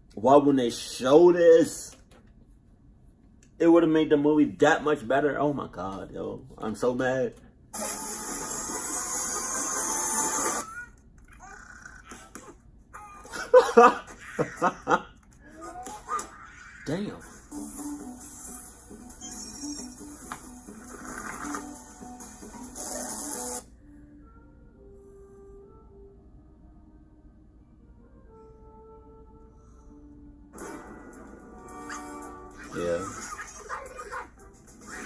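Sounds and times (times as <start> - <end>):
film soundtrack music: 17.2 - 35.0.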